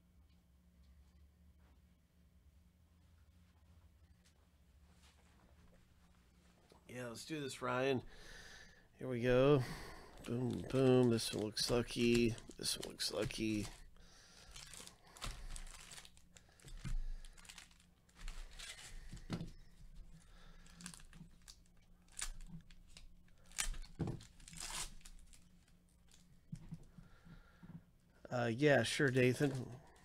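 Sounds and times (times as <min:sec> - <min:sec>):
plastic wrappers tearing and crinkling: 0:10.1 - 0:19.4, 0:20.2 - 0:26.3.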